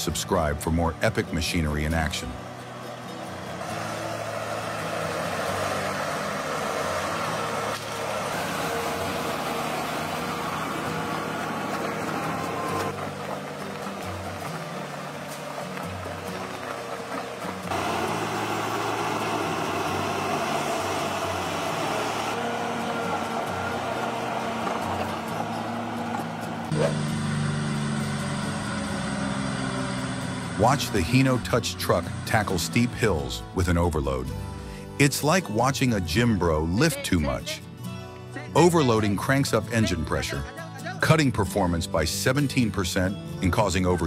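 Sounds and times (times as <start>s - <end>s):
background music: 0.0s - 44.0s
diesel engine working: 0.0s - 44.0s.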